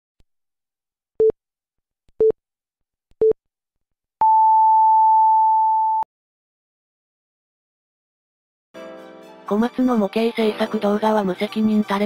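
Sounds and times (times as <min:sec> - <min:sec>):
long higher beep: 0:04.2 - 0:06.0.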